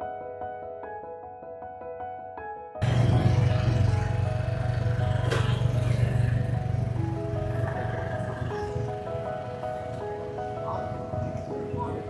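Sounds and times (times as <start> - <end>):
background music: 0.0 - 12.0
motor scooter engine running: 2.8 - 12.0.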